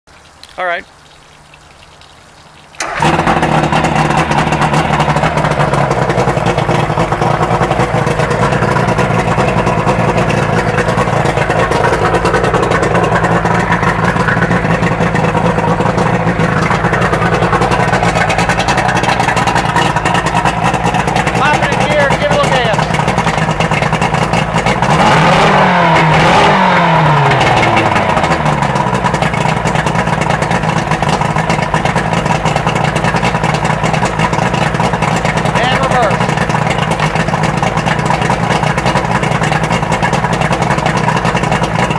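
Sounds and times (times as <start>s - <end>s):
outboard motor running: 2.8s - 41.9s.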